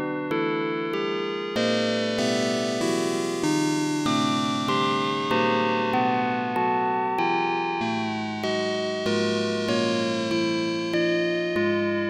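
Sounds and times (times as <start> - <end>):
ambient electronic keyboard music: 0.0 - 12.0.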